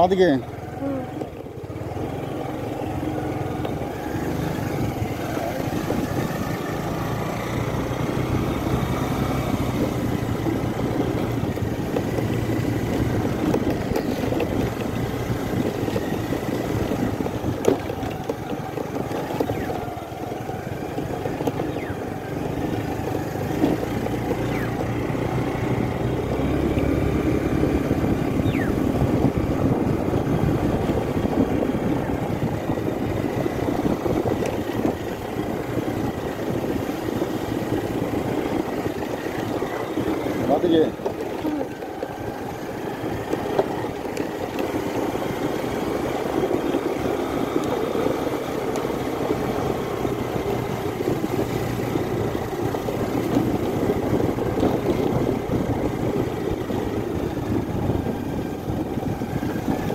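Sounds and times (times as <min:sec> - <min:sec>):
vehicle engine running: 0:00.0 - 0:59.9.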